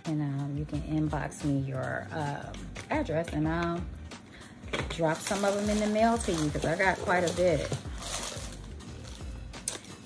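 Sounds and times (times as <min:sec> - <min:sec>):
soft background music: 0:00.0 - 0:10.0
plastic bag crinkling: 0:04.7 - 0:10.0.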